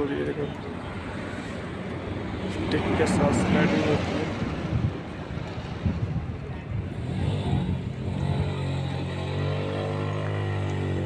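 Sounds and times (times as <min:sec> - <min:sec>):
outdoor rumble: 0:00.9 - 0:11.0
wind noise: 0:02.1 - 0:08.8.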